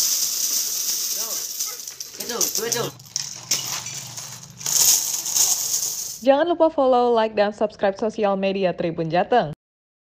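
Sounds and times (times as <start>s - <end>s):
coins jingling and clinking: 0.0s - 6.2s.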